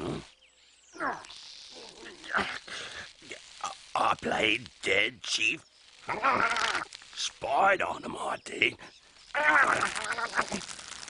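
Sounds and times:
raspy nasal cartoon voice: 9.4 - 10.6.

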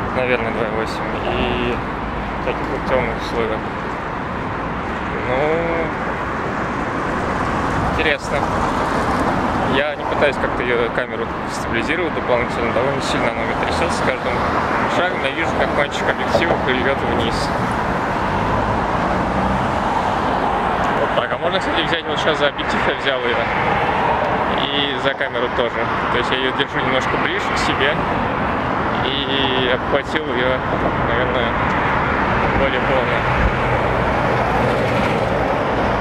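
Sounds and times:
road traffic passing: 0.0 - 36.0.

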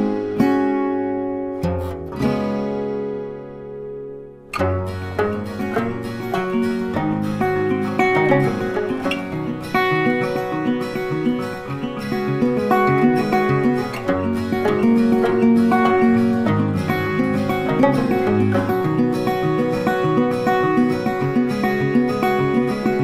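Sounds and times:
plucked string background music: 0.0 - 23.0.

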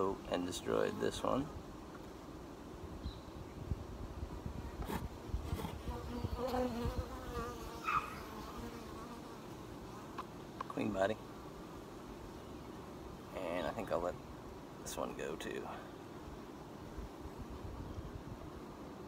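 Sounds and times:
bees buzzing: 4.9 - 10.2.

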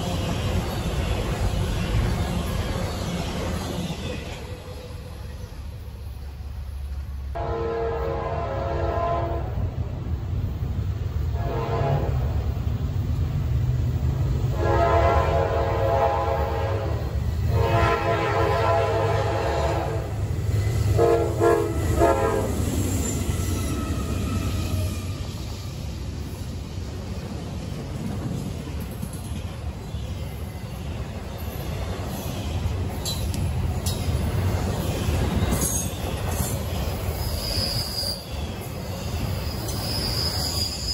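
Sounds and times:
train rumble: 0.0 - 40.9
locomotive air horn blasts: 7.4 - 9.6, 11.3 - 12.3, 14.5 - 20.2, 20.9 - 22.6.

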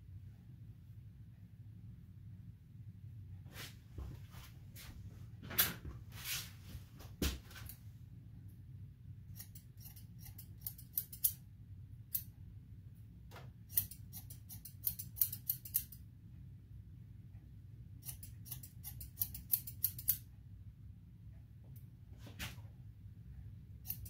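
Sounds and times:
scissors snipping hair: 9.4 - 11.4, 12.1 - 12.3, 13.7 - 16.0, 18.0 - 20.3.

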